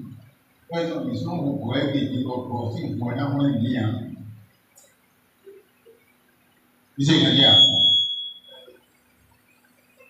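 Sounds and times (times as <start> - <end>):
faint low sound system hum: 0.0 - 10.0
man speaking through microphone: 0.7 - 4.4, 7.0 - 7.9
microphone feedback ringing: 7.0 - 8.8.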